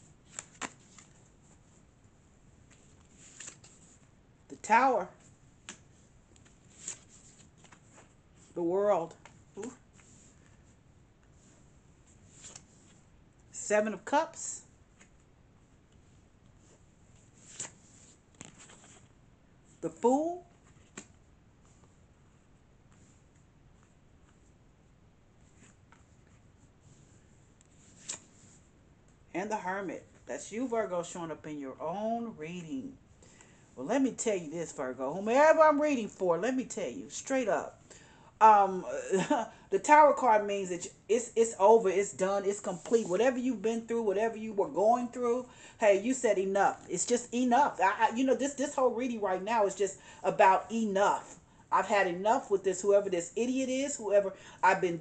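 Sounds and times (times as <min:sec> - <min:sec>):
card rustling from deck: 0:00.2 - 0:01.3, 0:02.7 - 0:04.1, 0:06.4 - 0:08.2, 0:12.2 - 0:13.0, 0:16.6 - 0:19.1, 0:27.7 - 0:28.6
cards sliding on cloth: 0:02.6 - 0:04.2, 0:05.2 - 0:08.6, 0:09.2 - 0:13.1, 0:15.9 - 0:19.1, 0:25.4 - 0:28.7
deck of cards picked up: 0:27.8 - 0:28.5.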